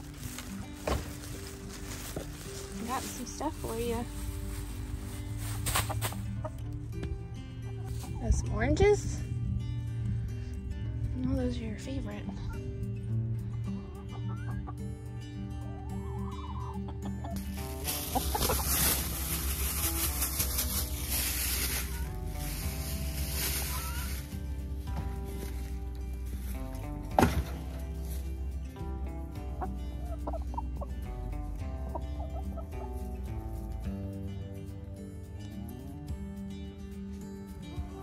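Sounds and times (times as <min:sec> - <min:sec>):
soft background music: 0:00.0 - 0:38.0
hens clucking: 0:05.6 - 0:06.7, 0:13.5 - 0:19.8, 0:29.4 - 0:33.2.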